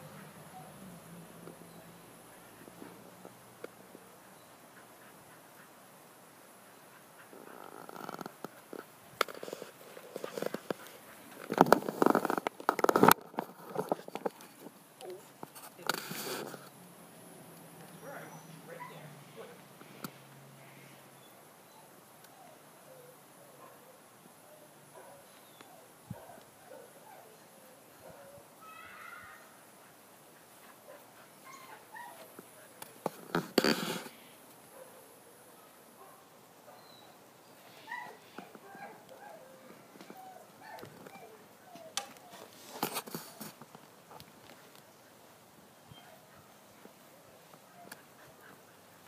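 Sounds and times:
dog whimpering faintly: 37.7 - 42.5.

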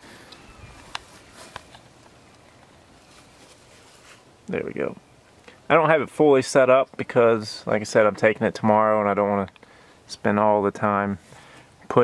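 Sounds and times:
faint bird chirps: 0.1 - 1.5.

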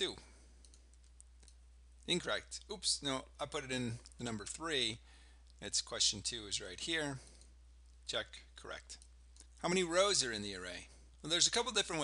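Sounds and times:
keyboard and mouse clicks: 0.6 - 1.6.

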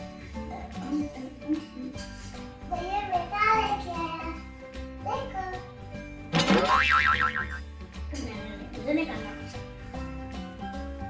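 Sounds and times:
background music: 0.0 - 11.0
cartoon boing: 6.4 - 7.6.

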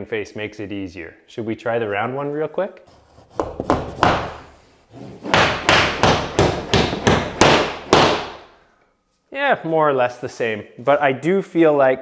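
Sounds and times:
hammer striking nail into drywall: 3.4 - 4.4, 5.2 - 8.5.

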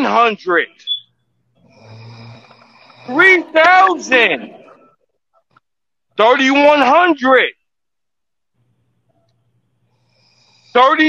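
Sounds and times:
person snoring: 1.6 - 4.8, 10.0 - 10.9.

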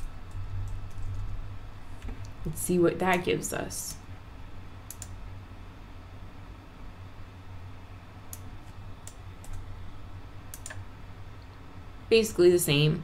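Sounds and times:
steady low hum: 0.0 - 13.0
computer mouse clicks: 4.9 - 5.2, 8.3 - 9.6, 10.5 - 10.8.

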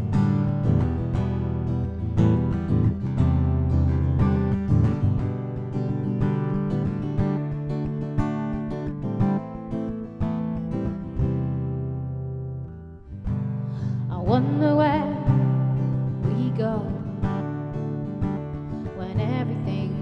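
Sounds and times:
acoustic guitar chords: 0.0 - 20.0
woman singing: 13.8 - 17.4, 18.8 - 20.0.

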